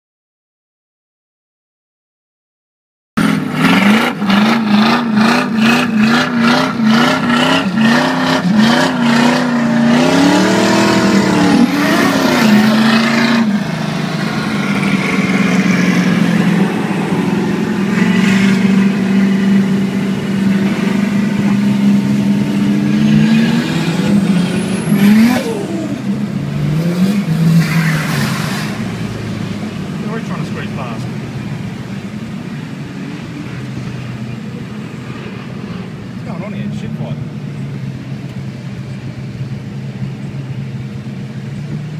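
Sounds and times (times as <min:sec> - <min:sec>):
car engine revving: 0:03.2 - 0:41.9.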